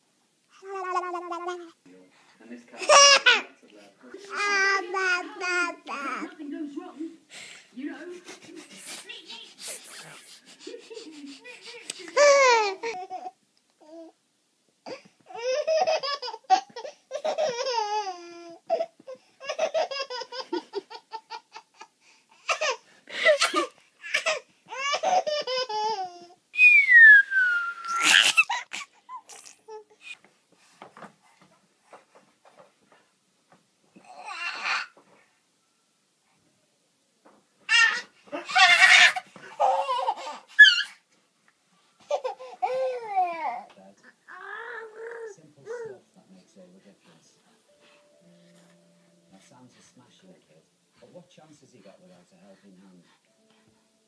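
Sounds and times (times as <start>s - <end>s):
baby laughing: 0.6s - 1.7s, 8.2s - 13.4s, 15.3s - 21.9s, 22.5s - 26.4s, 27.9s - 29.9s, 37.7s - 41.0s, 42.1s - 43.6s
baby squealing: 24.0s - 29.5s, 37.7s - 41.0s.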